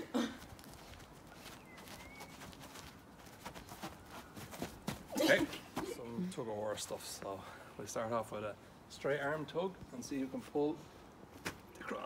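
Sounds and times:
footsteps shuffling on grass: 0.4 - 6.2.

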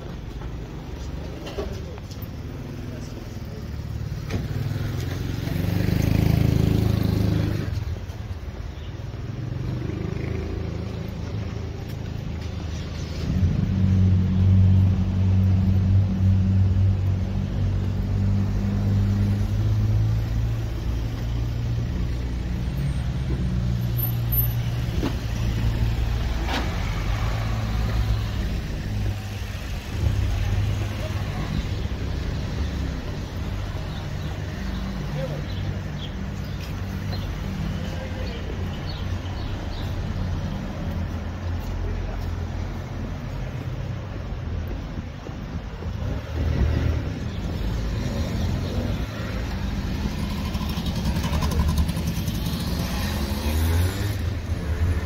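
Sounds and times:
low traffic rumble: 0.0 - 55.0
vehicle passing: 4.4 - 7.8, 46.1 - 55.0.

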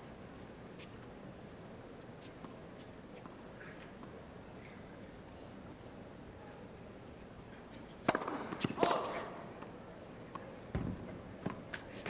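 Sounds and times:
tennis racket hitting ball: 8.0 - 9.2.

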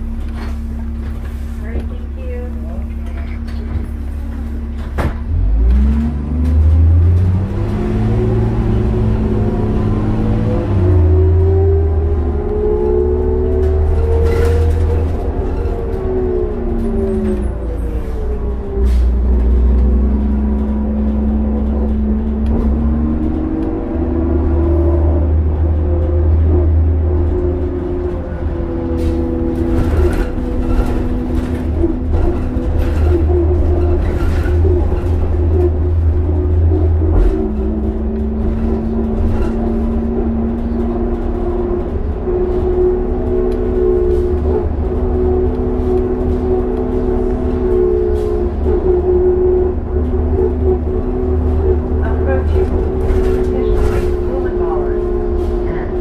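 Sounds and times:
bus engine drone: 0.0 - 56.0.

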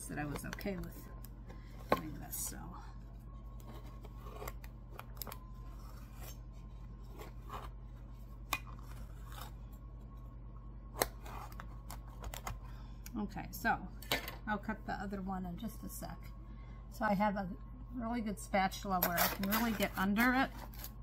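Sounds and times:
knife slicing and scraping bread: 3.6 - 4.7, 5.6 - 9.6, 19.0 - 21.0.

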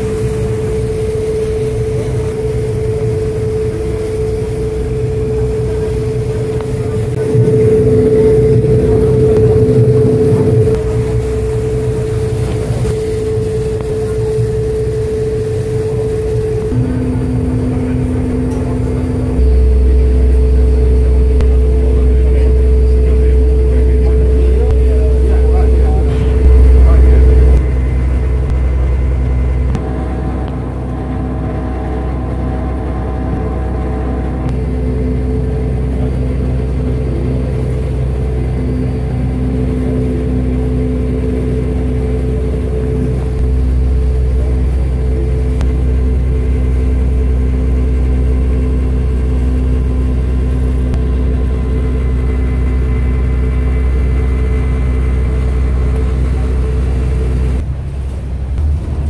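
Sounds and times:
boat diesel engine rumbling: 0.0 - 59.0.

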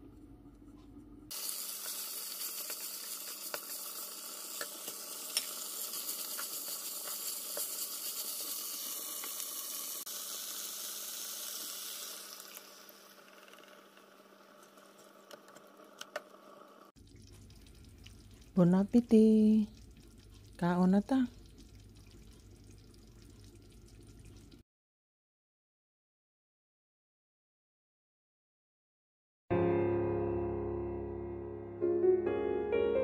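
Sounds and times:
food sizzling in frying pan: 1.3 - 16.9.

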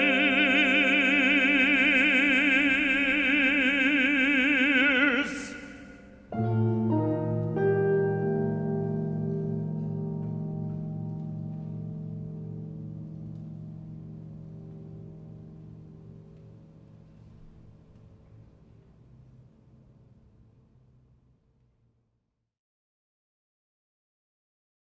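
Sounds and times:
sustained chord on vibraphone and piano: 6.4 - 16.2.

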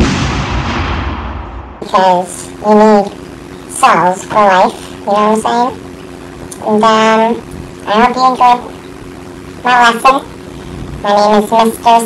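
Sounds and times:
explosion blast with low rumble: 0.0 - 1.8.

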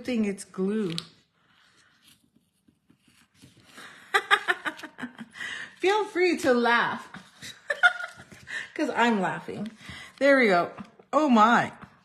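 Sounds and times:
paper card rustling: 0.0 - 11.0.

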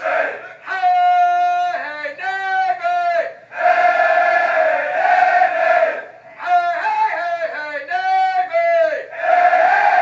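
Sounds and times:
recruits shouting in unison: 0.0 - 0.6, 3.5 - 6.1, 9.1 - 10.0.

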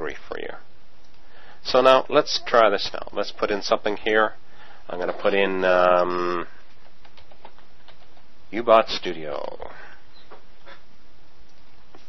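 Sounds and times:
microphone hiss: 0.0 - 12.0.

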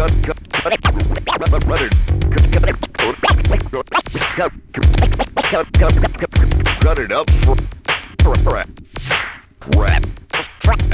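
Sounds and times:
drum beat with kick: 0.0 - 10.9
vinyl record scratching: 0.0 - 10.9.

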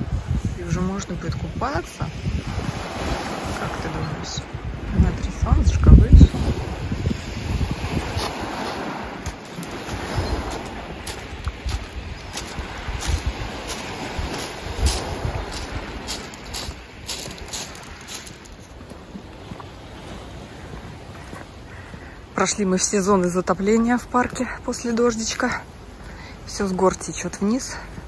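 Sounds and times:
wind on microphone: 0.0 - 22.3
surf on a pebbly shore: 0.0 - 28.0.

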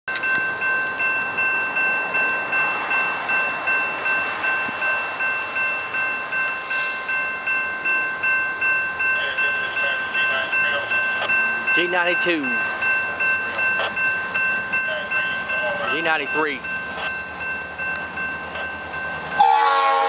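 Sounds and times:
crossing warning bell ringing: 0.1 - 20.0.

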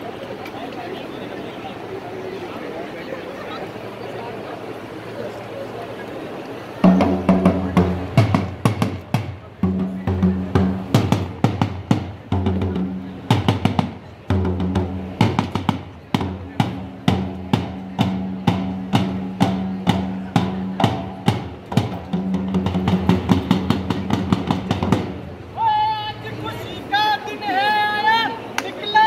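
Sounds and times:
drum beaten with a stick: 6.8 - 25.3
loud voice calling out: 25.6 - 29.0.

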